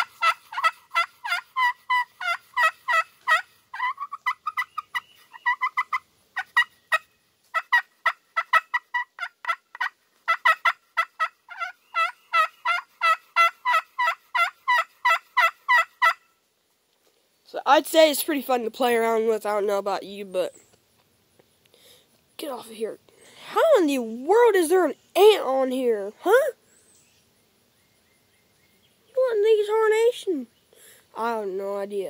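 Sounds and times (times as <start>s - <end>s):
turkey call yelping notes: 0.0s - 16.3s.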